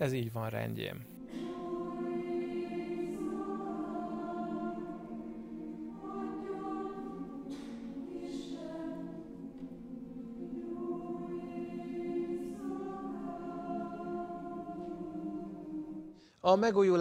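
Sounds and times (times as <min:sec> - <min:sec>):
mixed choir singing: 0:01.1 - 0:16.2.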